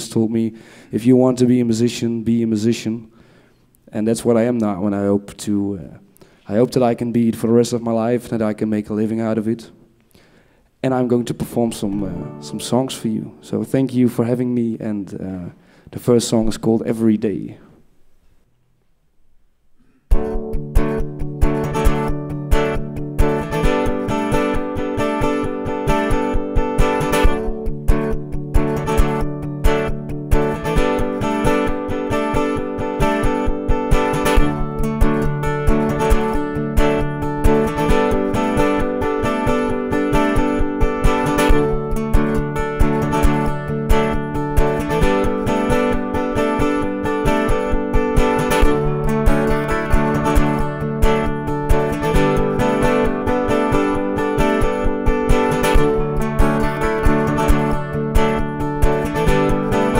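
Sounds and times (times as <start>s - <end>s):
acoustic guitar strumming: 10.1s - 14.4s, 19.8s - 59.9s.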